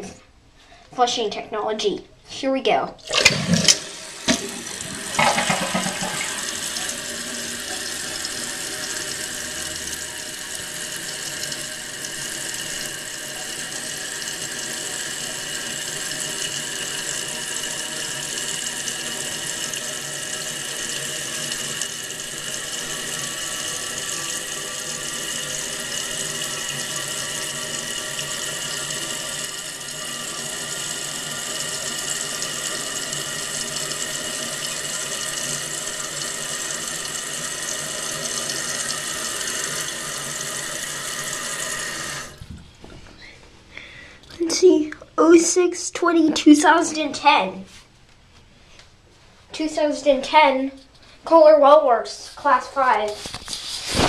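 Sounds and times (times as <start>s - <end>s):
toilet tank refilling hiss: 3.1s - 42.4s.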